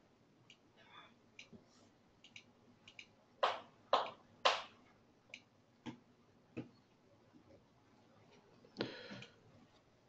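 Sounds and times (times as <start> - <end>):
computer mouse clicks: 2.2 - 3.2.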